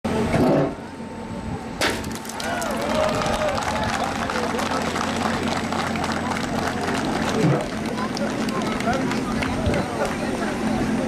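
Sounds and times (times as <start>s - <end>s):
voices of people outdoors: 0.1s - 11.0s.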